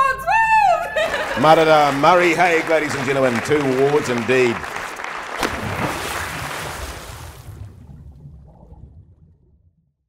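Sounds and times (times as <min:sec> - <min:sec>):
applause: 0:01.0 - 0:07.2.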